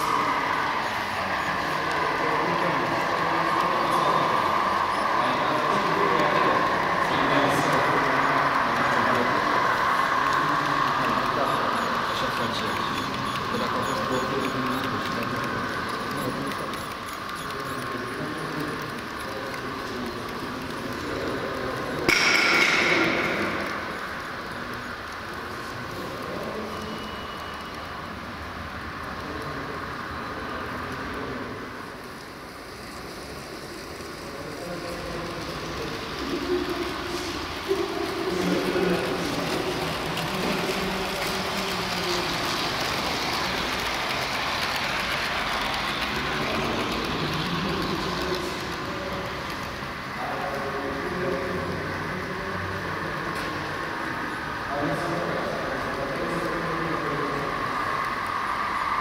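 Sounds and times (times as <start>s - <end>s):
model train rattling on track: 0.0s - 59.0s.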